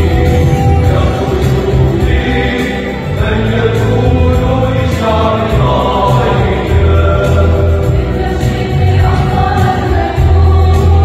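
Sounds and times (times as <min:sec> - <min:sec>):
deep bass line: 0:00.0 - 0:11.0
mixed choir singing a hymn: 0:00.0 - 0:11.0.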